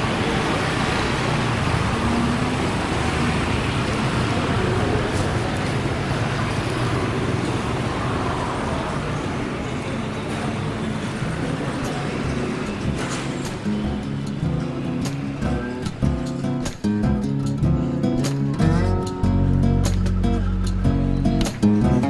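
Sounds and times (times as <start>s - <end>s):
street traffic noise: 0.0s - 22.0s
guitar music: 11.8s - 22.0s.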